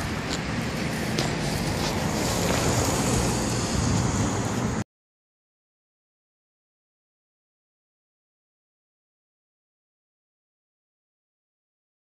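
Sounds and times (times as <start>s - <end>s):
rushing wind-like noise: 0.0s - 4.8s.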